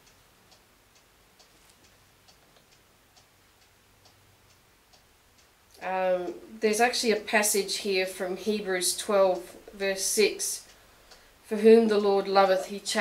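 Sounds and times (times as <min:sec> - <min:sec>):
faint regular ticking: 0:00.0 - 0:13.0.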